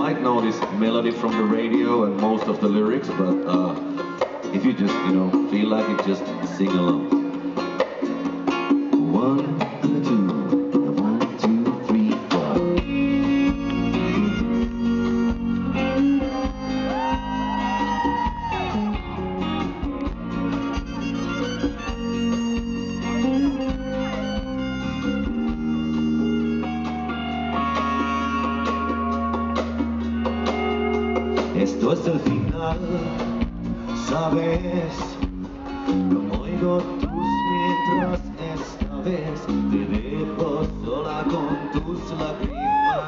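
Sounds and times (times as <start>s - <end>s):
acoustic guitar: 0.0s - 43.0s
live band playing: 0.0s - 43.0s.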